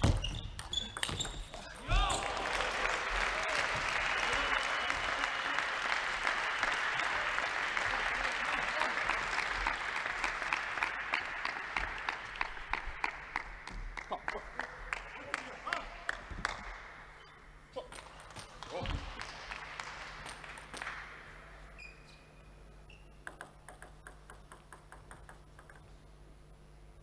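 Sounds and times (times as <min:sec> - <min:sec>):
people shouting: 0:01.8 - 0:03.5
crowd cheering and applauding: 0:01.8 - 0:17.2, 0:18.6 - 0:21.7
table tennis ball hits: 0:23.2 - 0:25.8.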